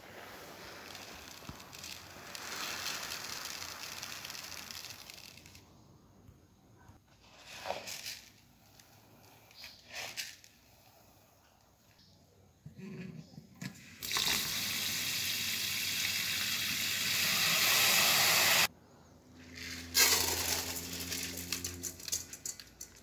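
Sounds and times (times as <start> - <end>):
rice grains rustling in plastic basin: 0.0 - 5.6, 7.2 - 8.8, 19.5 - 22.4.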